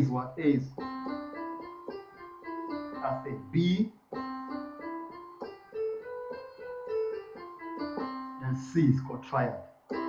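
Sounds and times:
keyboard playing chord notes: 0.0 - 10.0.

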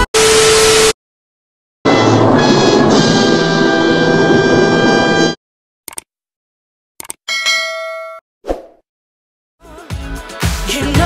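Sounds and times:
bell ding: 7.3 - 8.2.

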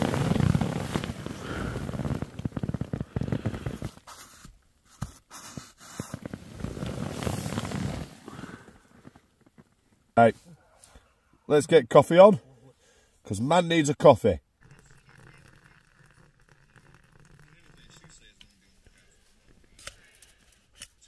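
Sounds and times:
fabric rustling and crinkling: 0.0 - 4.4, 5.7 - 10.0.

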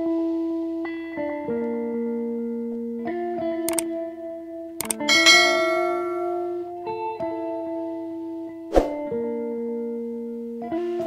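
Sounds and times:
soft guitar music: 0.0 - 11.0
bright bell chime: 5.1 - 6.7.

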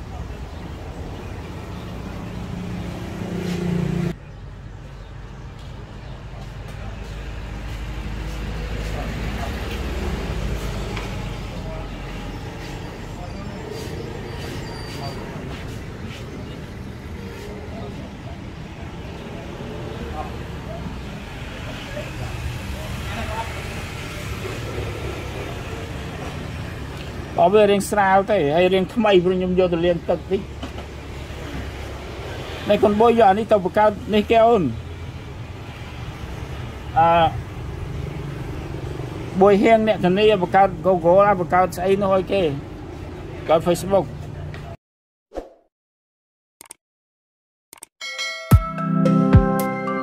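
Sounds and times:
road traffic engine rumble: 0.0 - 44.8.

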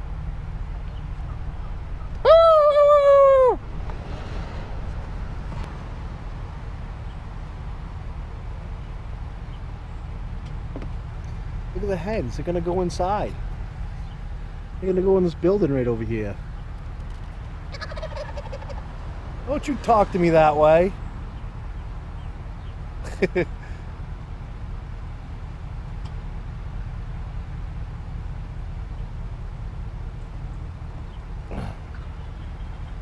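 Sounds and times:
steady low rumble: 0.0 - 33.0
turkey gobbling: 1.2 - 3.6, 17.7 - 18.8
person giving long call: 2.2 - 3.7.

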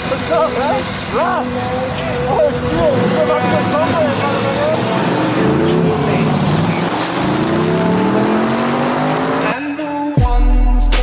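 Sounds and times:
vehicle engine revving: 0.1 - 9.6.

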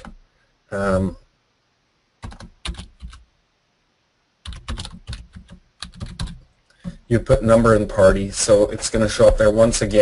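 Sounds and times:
typing on computer keyboard: 2.2 - 3.2, 4.4 - 7.0.

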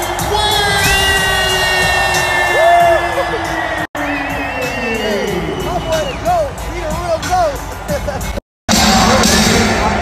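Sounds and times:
crowd noise: 0.0 - 10.0
loud music over sound system: 0.0 - 10.0.

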